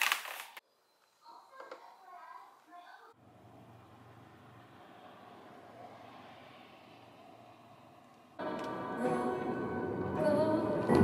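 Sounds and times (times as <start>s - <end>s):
music: 8.4s - 11.0s.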